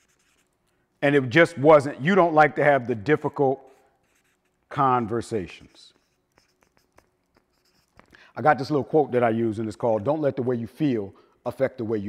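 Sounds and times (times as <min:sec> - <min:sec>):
marker scratching on paper: 0:00.0 - 0:00.7, 0:03.6 - 0:08.1.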